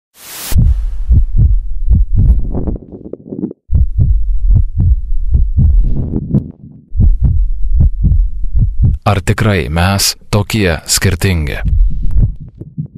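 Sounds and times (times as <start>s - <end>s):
burst of hiss: 0.2s - 0.9s
heartbeat thumps: 0.6s - 9.1s, 11.6s - 12.9s.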